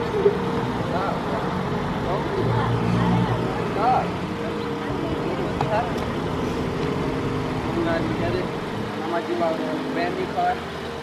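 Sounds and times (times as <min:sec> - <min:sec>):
vehicle engine idling: 0:00.0 - 0:11.0
voices: 0:00.0 - 0:11.0.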